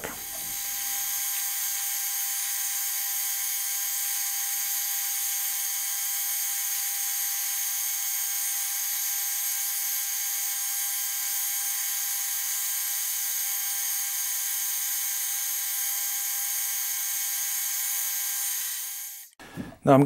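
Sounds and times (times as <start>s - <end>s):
metal lathe cutting steel: 0.0s - 19.4s.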